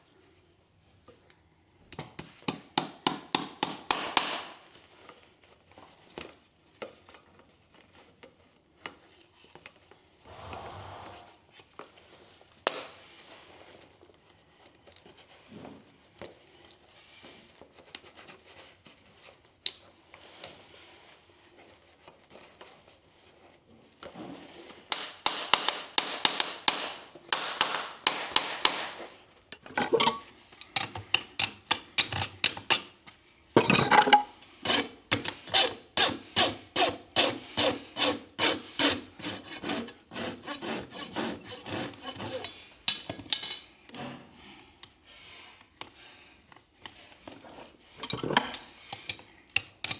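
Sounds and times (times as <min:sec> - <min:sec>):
faint handling sounds: 0:00.0 - 0:02.0, 0:04.5 - 0:10.6, 0:11.2 - 0:24.9, 0:29.0 - 0:34.6, 0:42.3 - 0:49.9
rasp filing hoof: 0:34.6 - 0:42.7.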